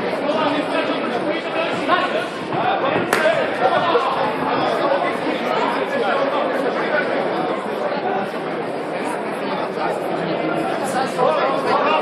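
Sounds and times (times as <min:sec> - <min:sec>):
spectators chattering in a hall: 0:00.0 - 0:12.0.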